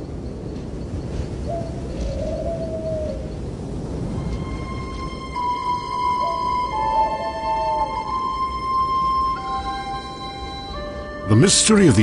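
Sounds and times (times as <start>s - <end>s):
bird call: 4.1s - 11.5s.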